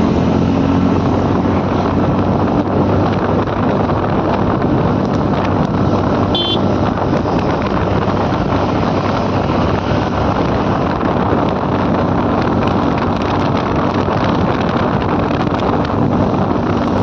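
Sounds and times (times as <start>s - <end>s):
scooter engine and tyre noise: 0.0s - 17.0s
wind buffeting microphone: 0.0s - 17.0s.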